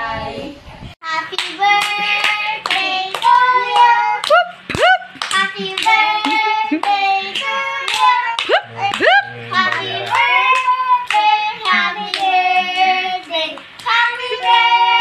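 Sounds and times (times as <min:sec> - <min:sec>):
children singing: 0:01.1 - 0:04.3, 0:05.3 - 0:15.0
children clapping: 0:01.3 - 0:15.0.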